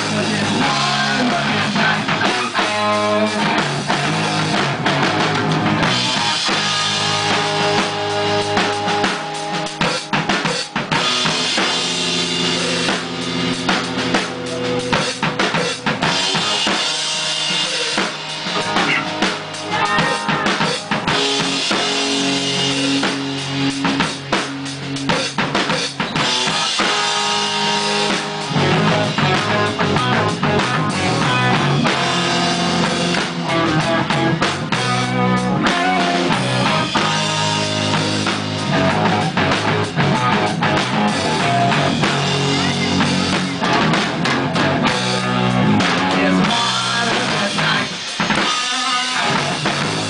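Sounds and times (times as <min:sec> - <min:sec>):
electric guitar: 0:00.0 - 0:50.0.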